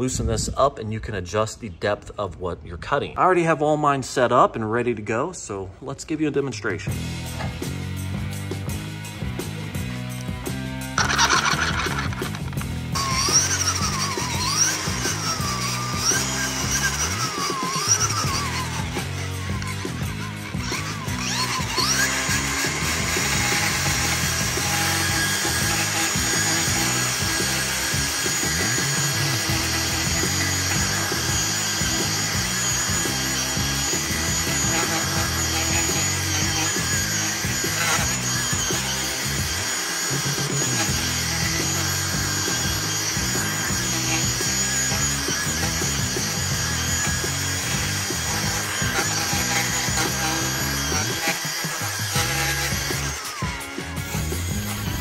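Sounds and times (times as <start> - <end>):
background music: 6.8 - 55.0
edger whining cutting grass: 8.6 - 55.0.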